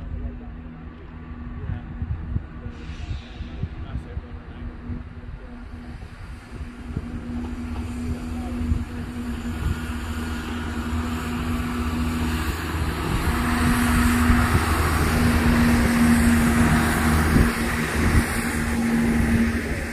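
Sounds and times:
diesel engines humming: 0:00.0 - 0:19.9
wheels rumbling on rail: 0:00.0 - 0:19.9.

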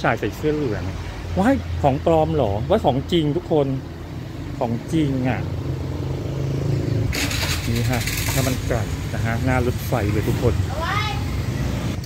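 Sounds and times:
vehicle engine running: 0:05.2 - 0:11.1.

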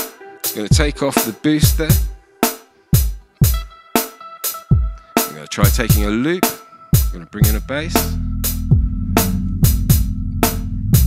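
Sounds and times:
looped drum beat: 0:00.0 - 0:11.0
held low bass notes: 0:07.0 - 0:11.0.

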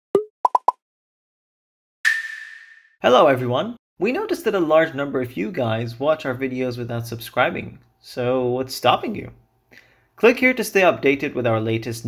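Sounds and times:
cartoon pop sound effects: 0:00.2 - 0:00.8, 0:02.1 - 0:02.9.

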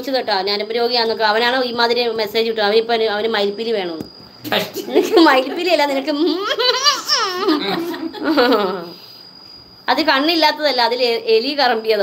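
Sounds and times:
woman laughing: 0:04.8 - 0:09.0.

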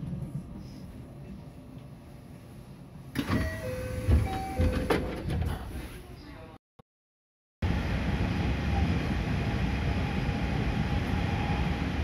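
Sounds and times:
sliding train doors opening: 0:03.1 - 0:05.9.

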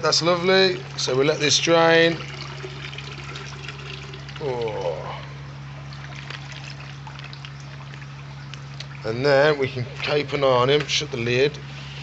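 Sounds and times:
water pouring into aquarium: 0:00.0 - 0:10.0.

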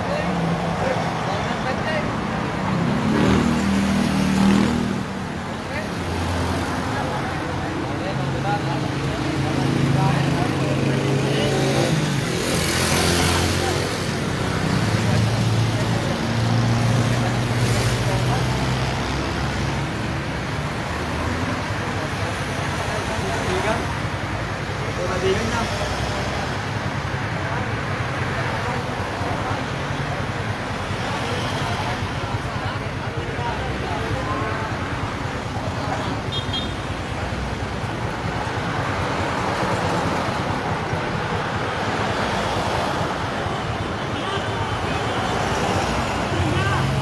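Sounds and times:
vehicle engines humming: 0:00.0 - 0:47.0
voices: 0:00.0 - 0:47.0.

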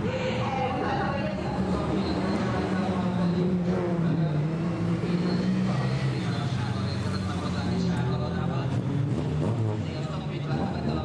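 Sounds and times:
rally car engine under load: 0:01.0 - 0:11.0.

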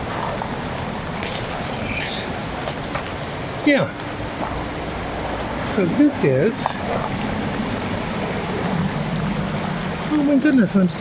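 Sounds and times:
creek water running over rocks: 0:00.0 - 0:11.0.

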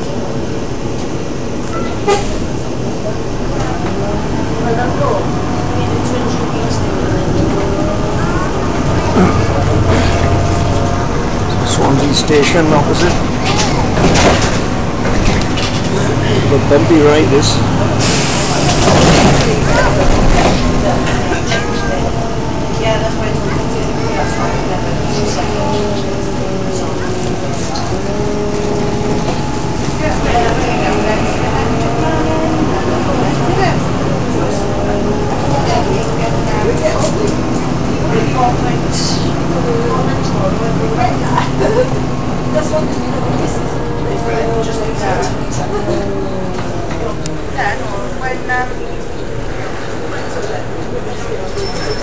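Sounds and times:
bus body rattling: 0:00.0 - 0:52.0
bus engine hum: 0:00.0 - 0:52.0
indistinct passenger chatter: 0:00.0 - 0:52.0.

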